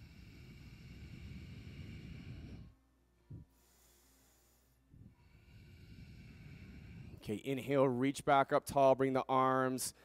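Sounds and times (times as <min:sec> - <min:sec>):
breath out hiss: 0:00.0 - 0:07.2.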